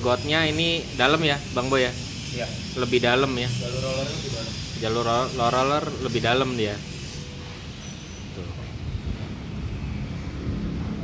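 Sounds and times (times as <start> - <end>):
passing road vehicle rumble: 7.6 - 11.0.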